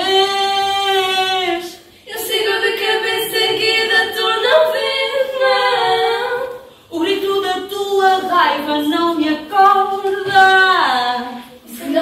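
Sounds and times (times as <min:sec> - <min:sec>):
voices singing a cappella: 0:00.0 - 0:12.0.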